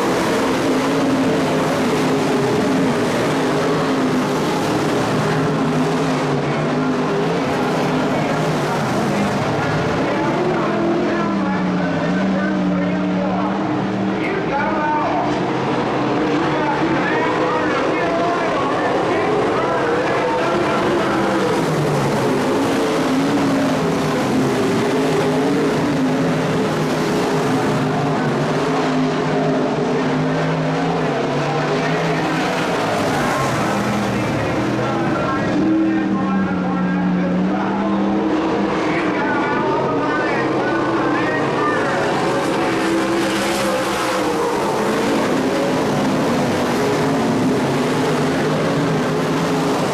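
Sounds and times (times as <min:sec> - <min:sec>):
race car engines racing: 0:00.0 - 0:49.9.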